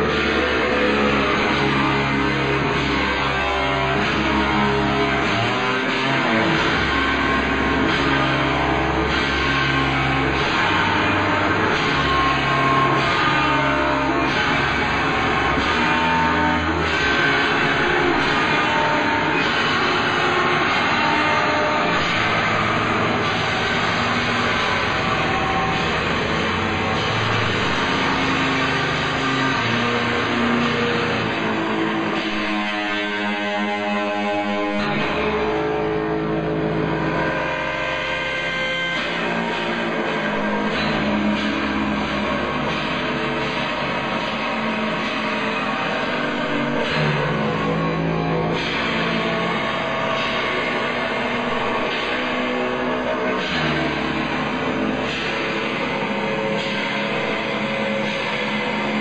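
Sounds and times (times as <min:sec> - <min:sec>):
electric guitar: 0:00.0 - 0:59.0
live post-punk band playing: 0:00.0 - 0:59.0.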